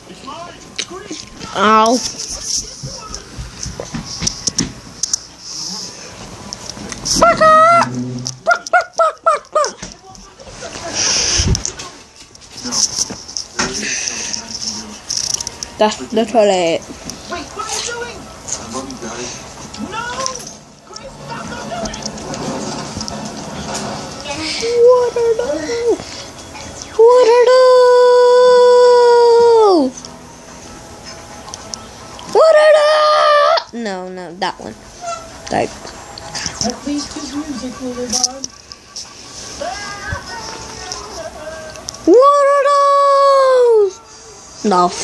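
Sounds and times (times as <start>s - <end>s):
high-pitched yelps: 7.2s - 7.9s, 32.4s - 33.7s
long loud howl: 27.7s - 29.8s.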